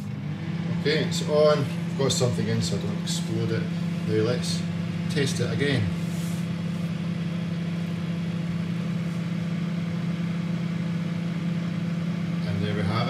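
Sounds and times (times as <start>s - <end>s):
microwave oven humming: 0.0s - 13.0s.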